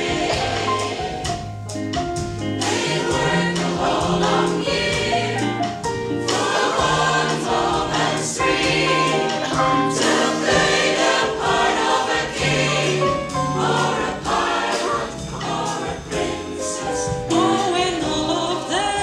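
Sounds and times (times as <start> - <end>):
mixed choir singing in harmony: 0.0 - 1.5, 2.3 - 19.0.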